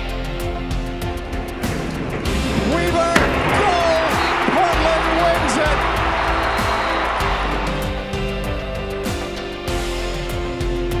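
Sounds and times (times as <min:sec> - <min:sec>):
background music: 0:00.0 - 0:11.0
stadium crowd cheering and screaming: 0:02.2 - 0:10.6
sharp thump: 0:03.2 - 0:03.6.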